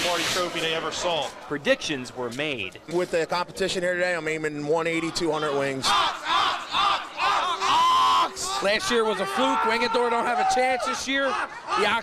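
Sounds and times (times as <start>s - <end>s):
young men yelling and cheering: 4.7s - 12.0s.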